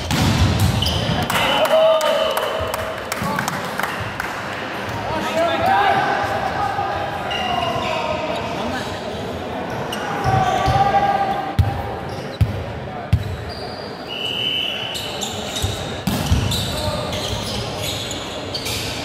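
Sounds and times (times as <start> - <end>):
thuds echoing in hall: 0.0 - 1.5, 15.7 - 16.7
players' voices echoing: 0.0 - 19.0.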